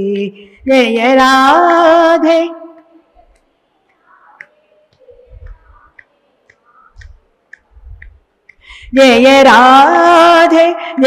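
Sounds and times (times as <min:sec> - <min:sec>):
faint sharp clicks: 0:02.8 - 0:08.7
soft low thumps: 0:07.0 - 0:09.0.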